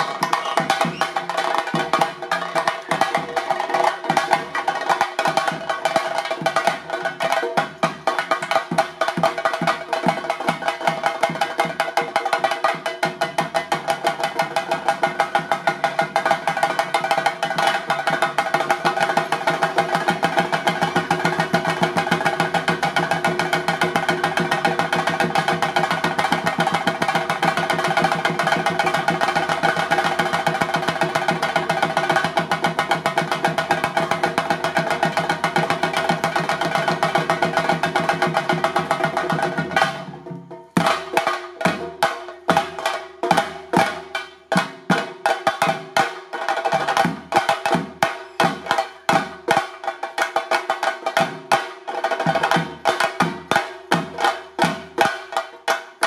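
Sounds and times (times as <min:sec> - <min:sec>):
drums beaten with sticks: 0:00.0 - 0:56.0.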